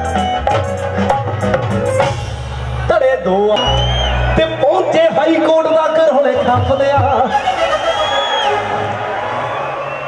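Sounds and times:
crowd noise: 0:00.0 - 0:10.0
live band through pa: 0:00.0 - 0:10.0.

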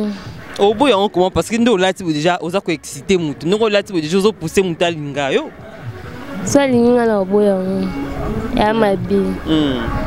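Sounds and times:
girl speaking into a microphone: 0:06.5 - 0:07.9, 0:08.6 - 0:09.4.

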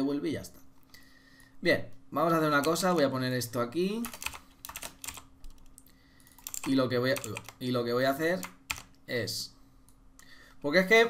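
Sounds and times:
computer keyboard typing: 0:02.5 - 0:03.1, 0:04.0 - 0:09.0.

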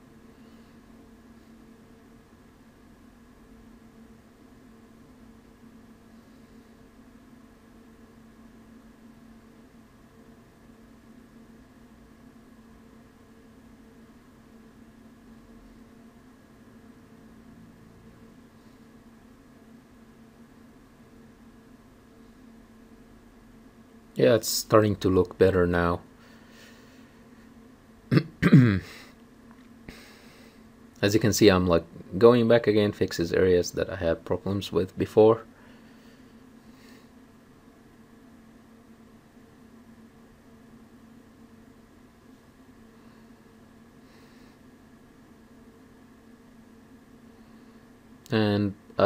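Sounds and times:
low constant hum: 0:00.0 - 0:49.0.

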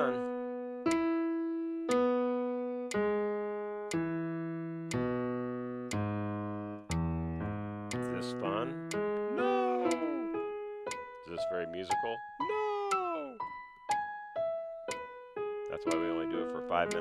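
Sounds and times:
piano block chords: 0:00.0 - 0:17.0.

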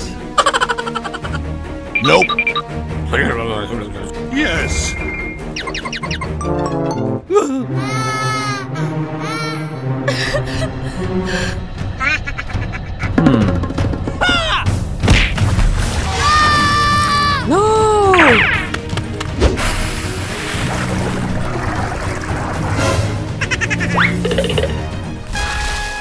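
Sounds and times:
background music: 0:00.0 - 0:26.0
cartoon child crying: 0:07.3 - 0:09.8.

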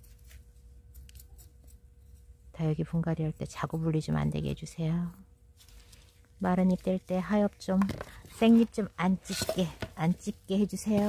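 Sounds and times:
tweezers ticking and scratching: 0:00.0 - 0:02.4
faint steady hum: 0:00.0 - 0:11.0.

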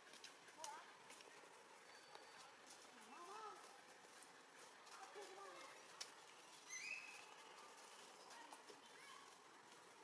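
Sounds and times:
faint rising and falling calls: 0:06.6 - 0:07.5.

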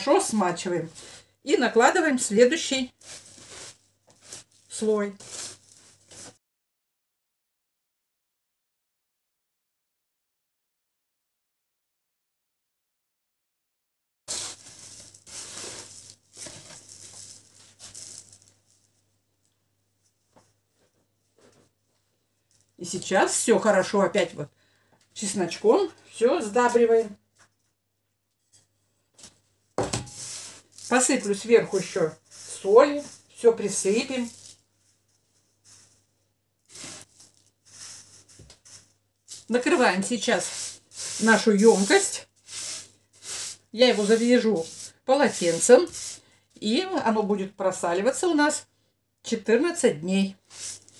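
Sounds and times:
salt crunching and scraping under hands: 0:02.9 - 0:06.3, 0:14.3 - 0:18.9, 0:30.1 - 0:34.6, 0:36.7 - 0:46.3, 0:50.5 - 0:50.9.

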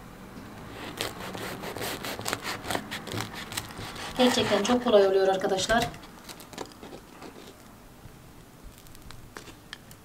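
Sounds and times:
knife sawing crusty bread: 0:00.7 - 0:05.1.

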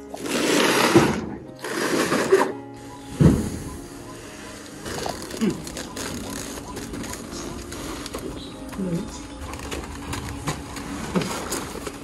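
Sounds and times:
background music: 0:00.0 - 0:12.0
cardboard carton scraping: 0:00.2 - 0:02.5
heavy thump: 0:03.1 - 0:03.7.

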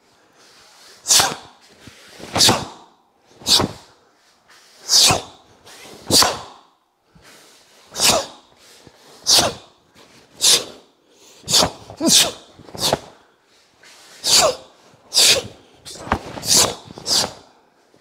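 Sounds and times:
man grunting: 0:12.0 - 0:12.4.

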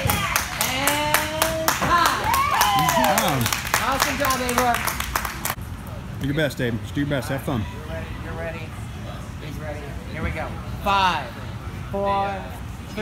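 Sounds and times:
group clapping: 0:00.0 - 0:05.6
people cheering with shouts: 0:01.8 - 0:03.5.

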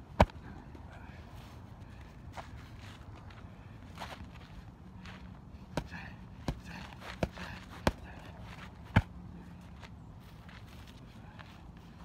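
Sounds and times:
footwork shuffling on grass: 0:00.0 - 0:12.0
strikes slapping pads: 0:00.1 - 0:00.4, 0:05.7 - 0:08.1.

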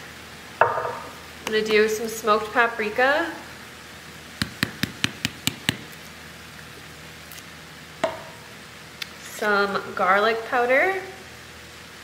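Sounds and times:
spice jar tapping: 0:04.4 - 0:05.9.

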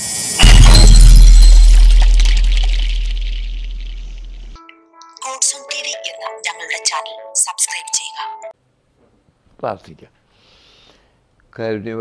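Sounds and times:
short electronic chime: 0:00.4 - 0:03.0
deep bass boom with crackling sparkle: 0:00.4 - 0:04.6.

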